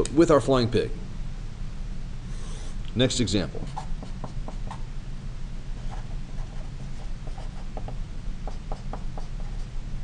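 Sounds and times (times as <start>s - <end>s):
marker writing on paper: 3.6s - 4.8s, 5.8s - 9.7s.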